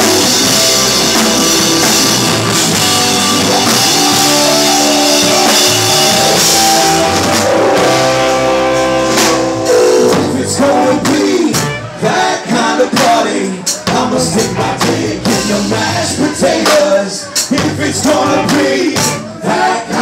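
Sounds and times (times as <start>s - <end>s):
live band playing loudly: 0.0s - 20.0s
person singing: 9.6s - 20.0s.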